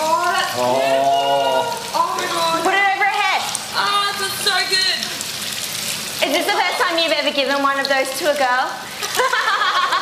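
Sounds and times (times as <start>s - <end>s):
water splashing on bare skin: 0.0s - 10.0s.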